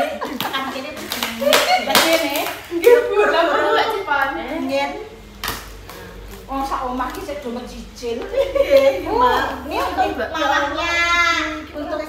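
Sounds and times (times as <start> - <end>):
sharp hand claps: 0.4 - 3.0.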